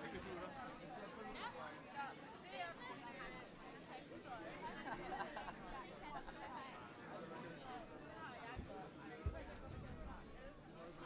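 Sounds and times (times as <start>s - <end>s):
quiet indistinct chatter: 0.0s - 11.0s.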